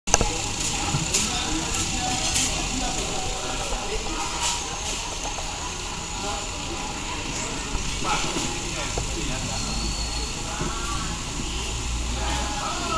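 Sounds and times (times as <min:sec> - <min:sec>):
indistinct voices chattering: 0:00.1 - 0:12.9.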